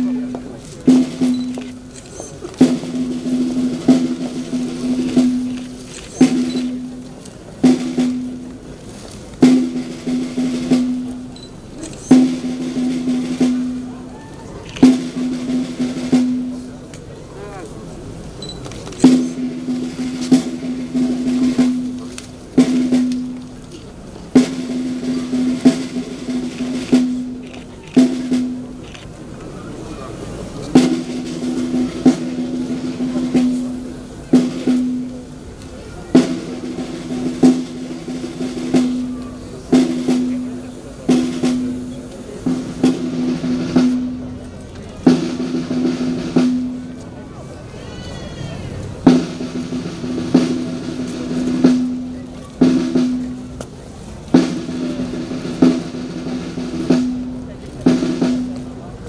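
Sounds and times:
snare drum rolls: 0.0 - 17.0, 18.8 - 28.8, 30.6 - 47.5, 48.9 - 59.0.

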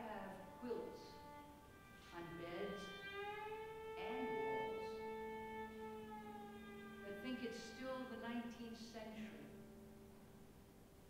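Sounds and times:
violin playing: 0.0 - 10.7.

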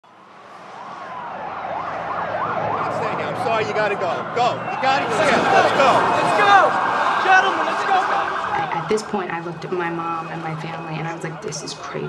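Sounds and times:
street noise: 0.0 - 12.0
emergency vehicle siren wailing: 0.2 - 12.0.

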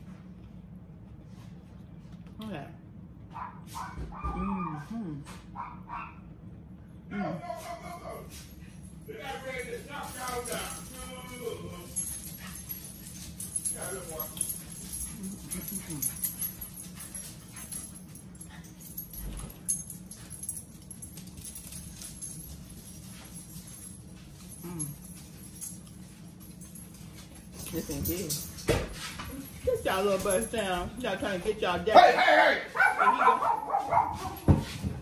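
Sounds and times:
dog whimpering: 4.2 - 5.1.

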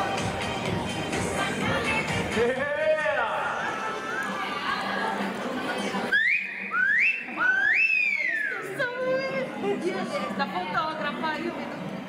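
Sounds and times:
person whistling rising notes: 6.1 - 8.7.

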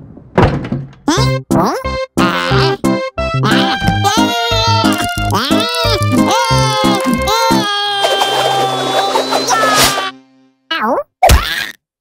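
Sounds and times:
comic music with sliding notes: 1.1 - 10.6.

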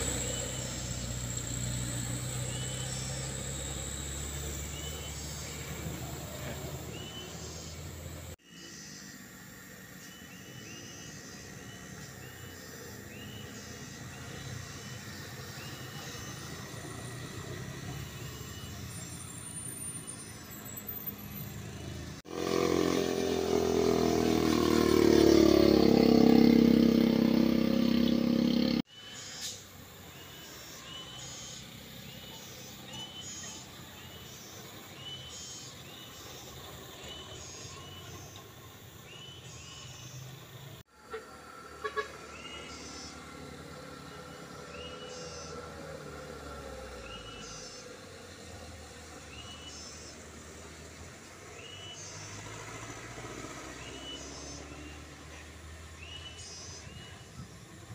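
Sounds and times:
motorcycle engines revving: 0.0 - 57.9
passing traffic: 0.0 - 57.9.

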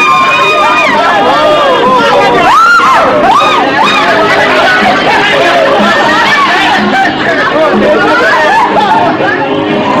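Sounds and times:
dance music: 0.0 - 10.0
party crowd talking loudly: 0.0 - 10.0.

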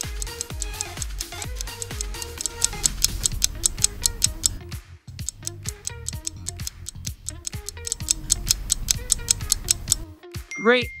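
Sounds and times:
countdown music with ticking beat: 0.0 - 4.6, 5.2 - 11.0.

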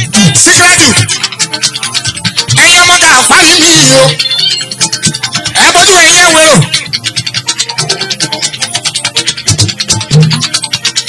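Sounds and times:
fast percussion music: 0.0 - 11.0.

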